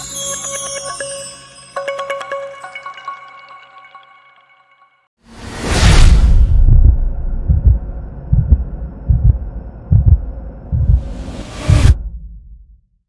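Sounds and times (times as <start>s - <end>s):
whoosh: 5.3s - 9.2s, 10.7s - 12.4s
deep low thuds: 5.8s - 12.8s.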